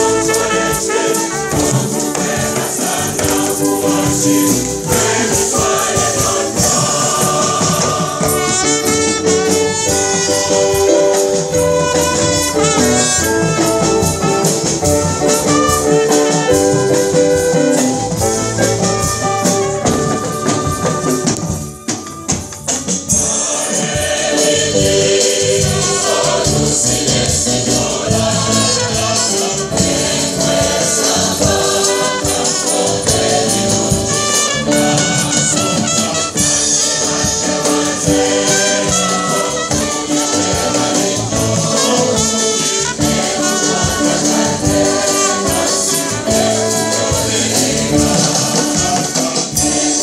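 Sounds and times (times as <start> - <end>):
acoustic guitar: 0.0 - 50.0
choir singing a hymn: 0.0 - 50.0
keyboard: 0.0 - 50.0
rattling hand percussion: 0.0 - 50.0.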